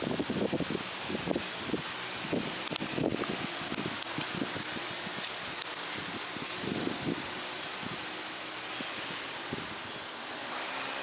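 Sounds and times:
rustling leaves: 0.0 - 11.0
wind hiss: 0.0 - 11.0.

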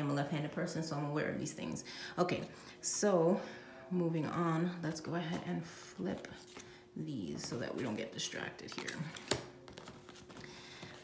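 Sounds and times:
cards rustling on cloth: 8.7 - 11.0.

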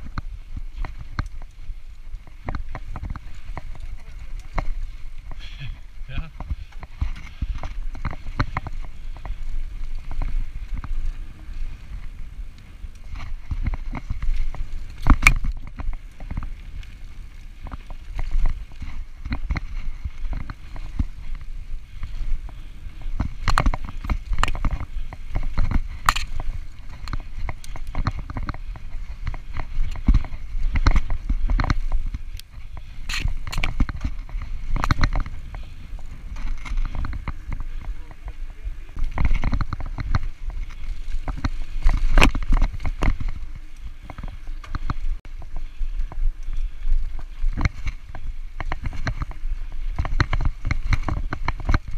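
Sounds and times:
bike knocking and rattling: 0.0 - 51.9
tyre and wind rumble: 0.0 - 51.9.

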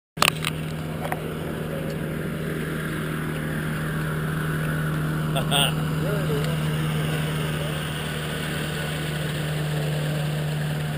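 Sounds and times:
radial engine droning: 0.2 - 10.9.

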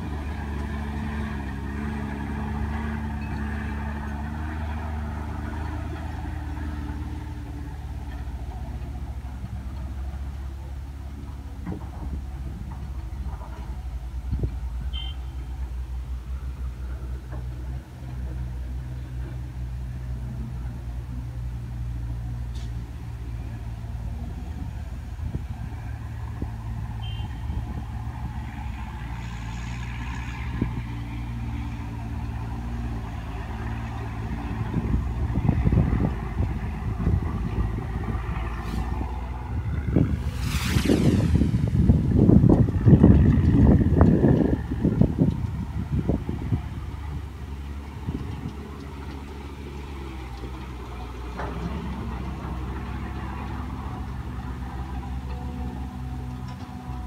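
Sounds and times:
truck engines labouring uphill: 0.0 - 57.0.

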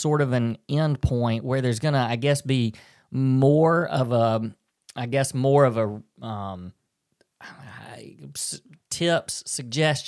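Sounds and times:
person breathing: 2.7 - 3.1.

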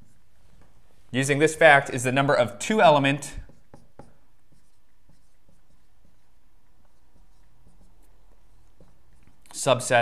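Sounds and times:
marker writing on whiteboard: 0.0 - 10.0
room noise: 0.0 - 10.0.

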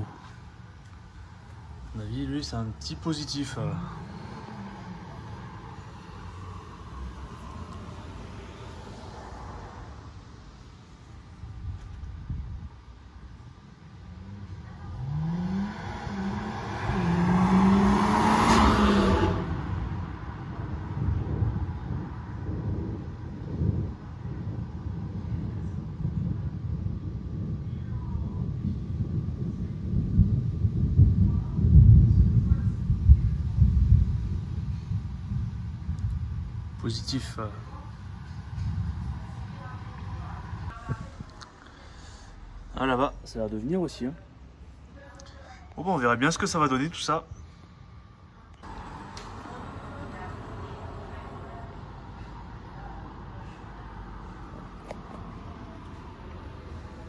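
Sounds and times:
vehicle accelerating past: 3.5 - 10.2, 14.1 - 22.0, 48.6 - 57.0.

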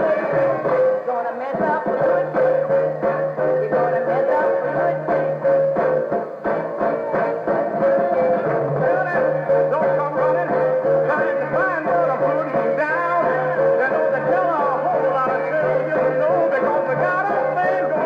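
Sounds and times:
person singing: 0.0 - 18.0
soul band playing: 0.0 - 18.0.

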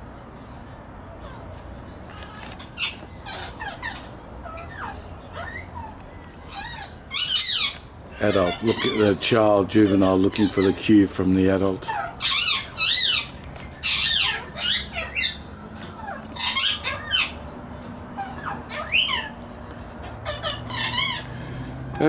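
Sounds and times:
magpies squawking: 2.1 - 22.0.

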